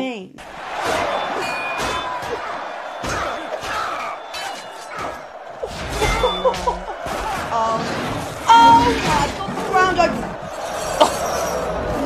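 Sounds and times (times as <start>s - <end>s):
crowd roaring: 0.4s - 12.0s.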